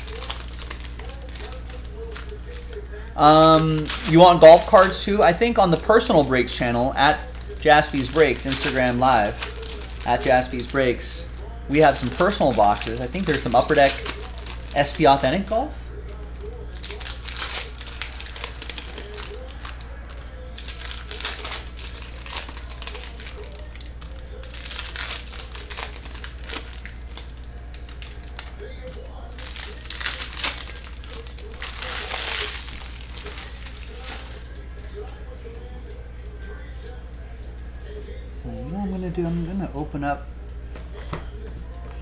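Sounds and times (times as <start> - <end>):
foil wrappers crinkling: 0.0 - 37.5
cards being handled: 7.2 - 15.4.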